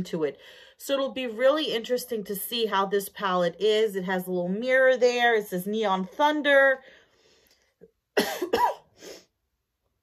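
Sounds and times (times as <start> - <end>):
woman coughing: 8.2 - 9.0.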